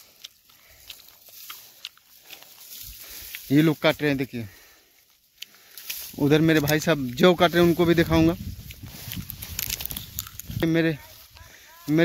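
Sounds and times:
crackles of brittle stems: 0:00.0 - 0:12.0
rustling of dry vines: 0:00.0 - 0:12.0.

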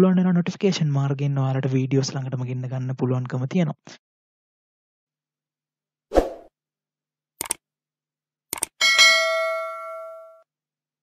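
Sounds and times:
quick double clicks: 0:07.4 - 0:07.6, 0:08.5 - 0:08.8
bell ding: 0:08.8 - 0:10.4.

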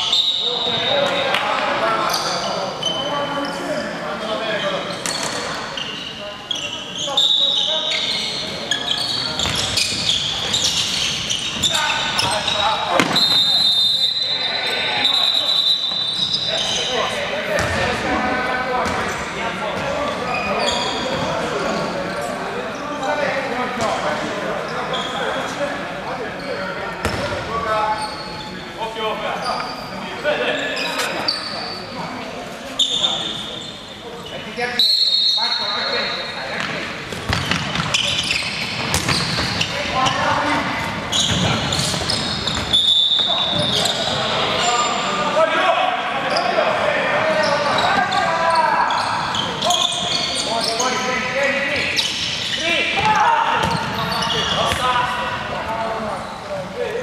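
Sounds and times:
ball bouncing on wooden court: 0:09.4 - 0:10.0, 0:17.6 - 0:17.9, 0:27.0 - 0:27.4, 0:36.6 - 0:38.1, 0:38.8 - 0:39.7, 0:53.0 - 0:54.0.

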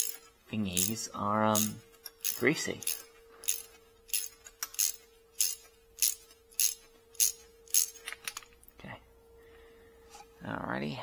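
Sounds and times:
socket ratchet clicking: 0:01.6 - 0:08.4.

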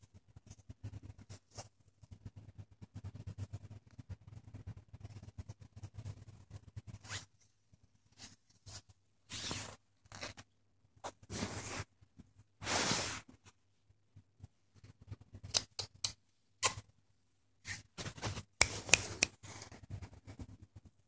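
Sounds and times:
rustling on a blanket: 0:08.1 - 0:10.4, 0:11.0 - 0:12.0, 0:12.6 - 0:13.6
hand brushing sounds: 0:11.3 - 0:11.9, 0:17.6 - 0:20.5.

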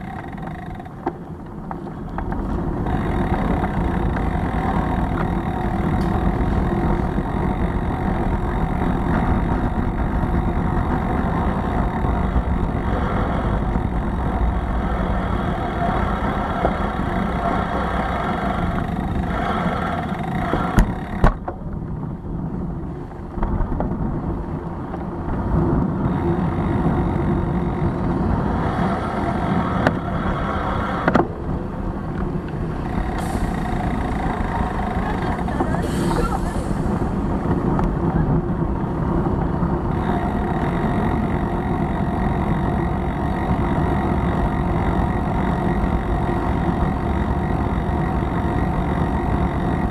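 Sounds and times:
bicycle road rumble: 0:00.0 - 0:49.9
city traffic: 0:00.0 - 0:49.9
wind: 0:00.0 - 0:49.9.

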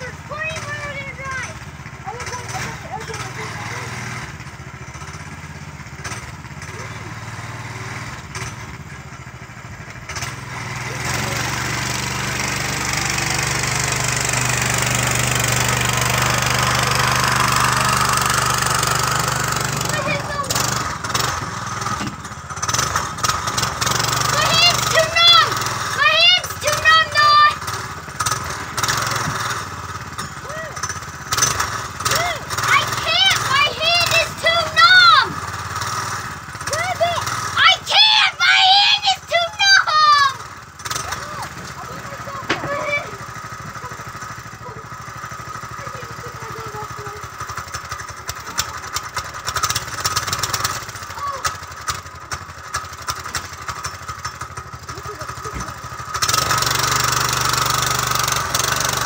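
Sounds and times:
go-kart engine running: 0:00.0 - 0:59.0
high-pitched voices shouting: 0:19.8 - 0:20.6, 0:24.3 - 0:27.7, 0:30.4 - 0:30.9, 0:32.0 - 0:35.4, 0:36.7 - 0:43.2, 0:51.1 - 0:51.5.

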